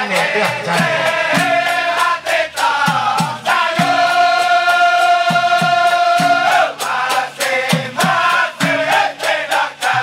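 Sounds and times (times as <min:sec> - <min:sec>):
hand-clapping: 0:00.0 - 0:01.0
drum beats: 0:00.0 - 0:10.0
men singing in unison: 0:00.0 - 0:10.0.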